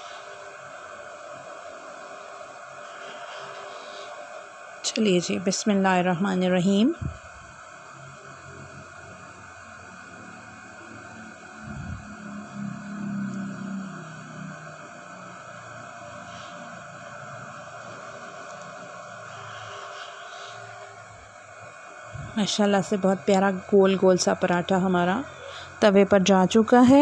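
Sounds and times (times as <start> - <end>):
steady hiss: 0.0 - 27.0.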